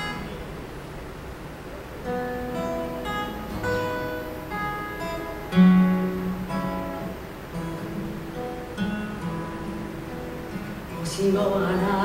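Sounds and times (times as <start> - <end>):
acoustic guitar chord: 0.0 - 0.9, 1.8 - 12.0.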